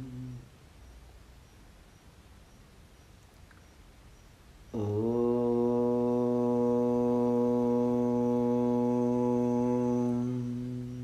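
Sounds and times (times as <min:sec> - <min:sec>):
low voice chanting om: 0:00.0 - 0:00.8, 0:04.6 - 0:11.0.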